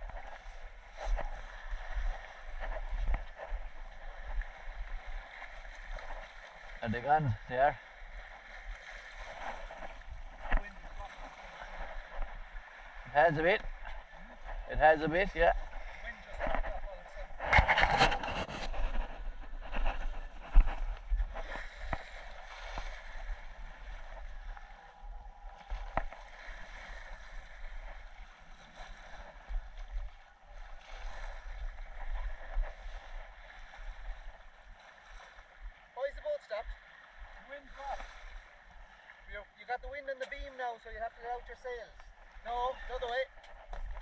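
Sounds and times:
water washing along hull: 0.0 - 44.0
wind buffeting microphone: 9.2 - 34.6.

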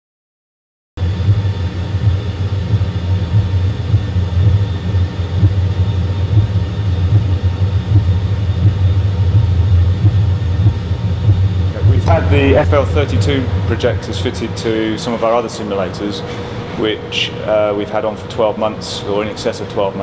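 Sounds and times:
airliner engine rumble: 1.0 - 20.0
faint steady whine: 1.0 - 20.0.

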